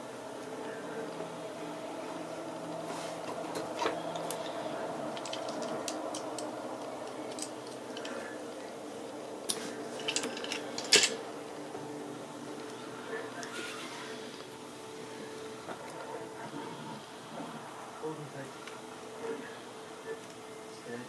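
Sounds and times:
steady low hum: 0.0s - 21.0s.

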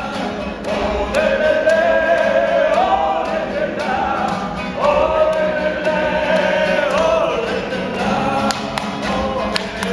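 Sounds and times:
crowd singing together: 0.0s - 9.9s
strummed acoustic guitar: 0.0s - 9.9s.

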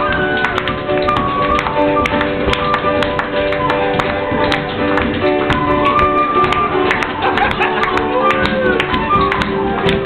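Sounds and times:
flute playing held notes: 0.0s - 4.5s, 5.5s - 7.2s, 8.0s - 10.0s
piano accompaniment: 0.0s - 10.0s
tap shoes on floor: 0.0s - 10.0s.

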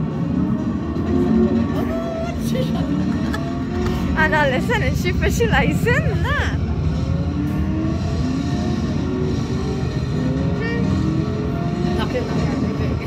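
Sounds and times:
game music: 0.0s - 12.4s
car engine drone: 0.0s - 13.0s.

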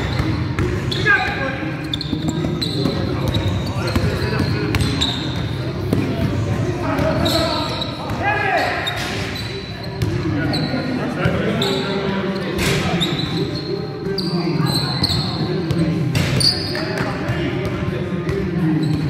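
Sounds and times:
sneakers squeaking: 0.0s - 19.0s.

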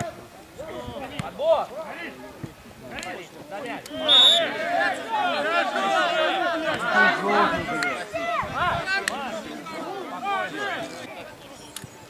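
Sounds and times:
referee's whistle blast: 3.8s - 4.6s
men shouting: 3.9s - 11.1s.

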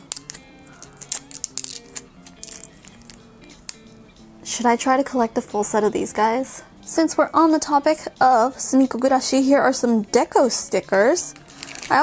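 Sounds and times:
plastic film peeling crackles: 0.0s - 3.9s, 11.3s - 12.0s
soft background music: 0.0s - 12.0s.

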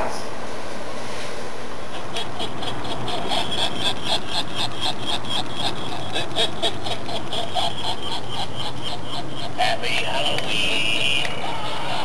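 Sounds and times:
person cackling laughter: 1.9s - 12.0s.

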